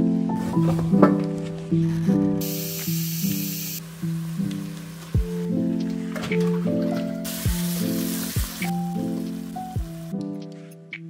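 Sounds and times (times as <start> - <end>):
soft background music: 0.0 - 11.0
spray hiss: 2.4 - 5.2, 7.2 - 10.1.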